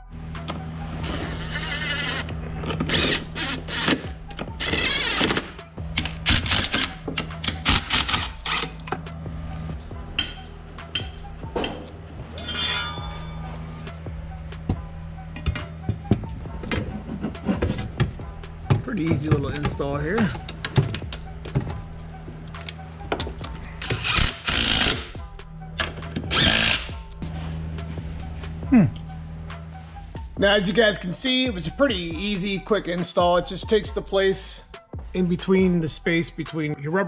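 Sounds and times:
held low music tones: 0.0 - 37.0.

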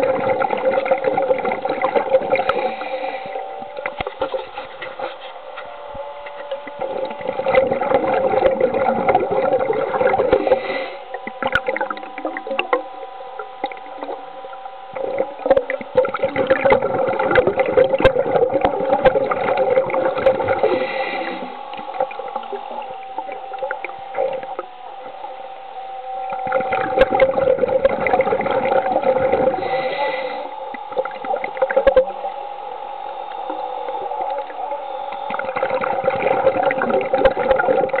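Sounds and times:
churning crackling water noise: 0.0 - 38.0
underwater thruster motor whine: 0.0 - 38.0.

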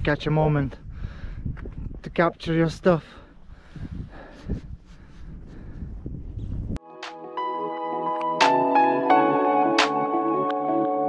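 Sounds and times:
wind rumbling on microphone: 0.0 - 6.8
calm ambient music with chimes: 6.9 - 11.0.

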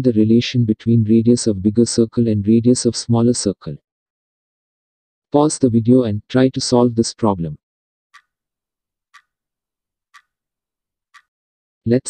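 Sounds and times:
clock ticking: 8.1 - 8.3, 9.1 - 9.3, 10.1 - 10.4, 11.1 - 11.3.

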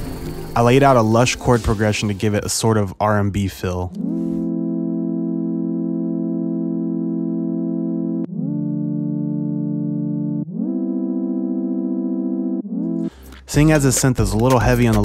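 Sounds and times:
sine-wave synth chords: 4.0 - 13.1.

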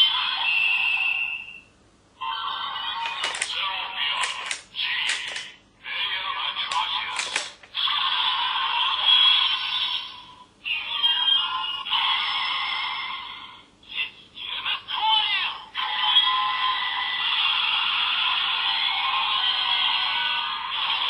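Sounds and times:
sharp clicks: 3.0 - 3.6, 4.2 - 5.6, 6.7 - 7.8.

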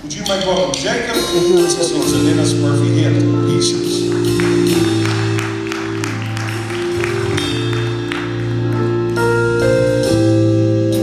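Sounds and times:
keyboard chords: 0.0 - 11.0.

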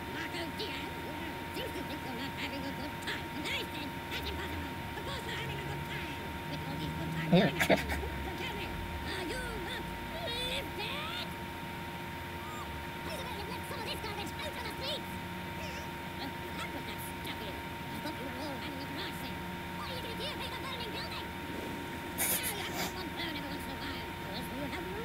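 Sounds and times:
cartoon voices: 0.2 - 11.3, 12.4 - 15.0, 15.6 - 19.2, 19.8 - 25.0.

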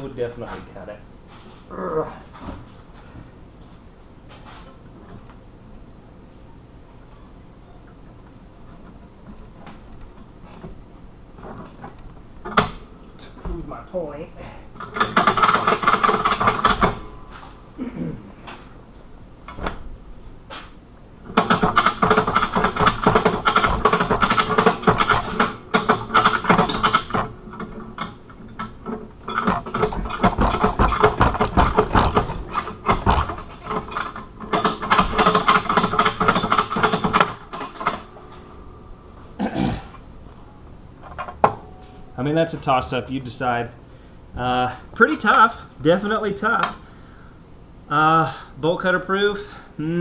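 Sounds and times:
man groaning with strain: 1.7 - 2.3, 17.8 - 18.4, 49.8 - 50.0.

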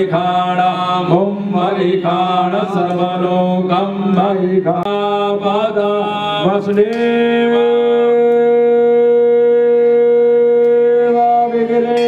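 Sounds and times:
conch shell blown: 7.3 - 12.0.

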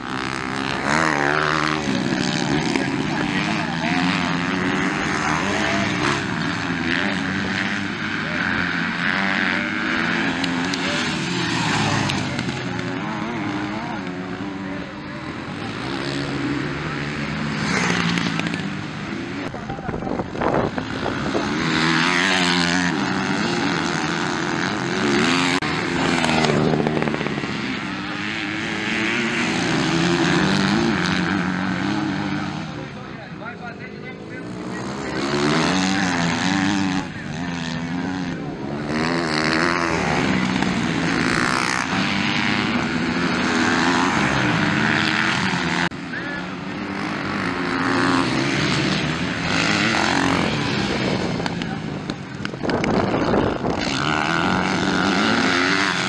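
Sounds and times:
motocross bike engines racing: 0.0 - 56.0.

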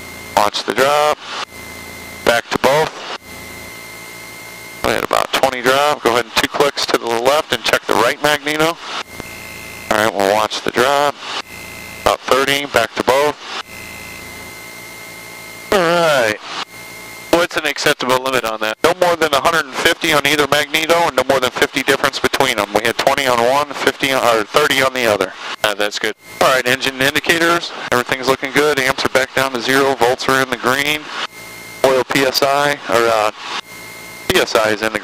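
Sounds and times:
aircraft engine drone: 0.0 - 35.0
faint constant whine: 0.0 - 35.0.

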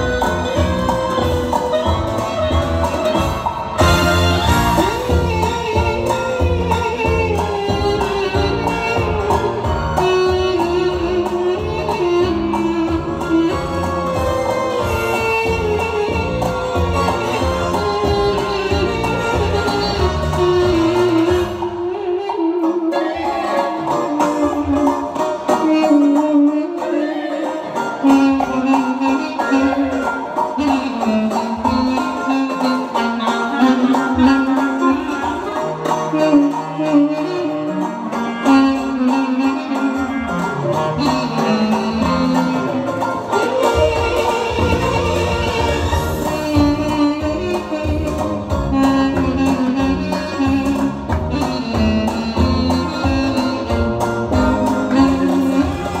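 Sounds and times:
backing accompaniment: 0.0 - 56.0
wind instrument folk melody: 0.0 - 56.0.

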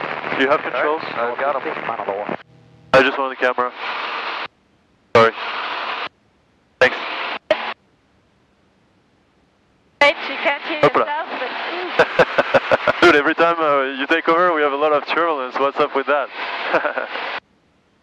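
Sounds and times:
cockpit intercom hiss: 0.3 - 4.5, 5.2 - 6.1, 6.8 - 7.8.

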